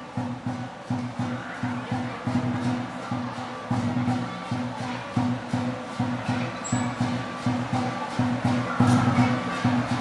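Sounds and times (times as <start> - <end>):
cymbals clashing: 0.0 - 10.0
fast drum beat: 0.0 - 10.0.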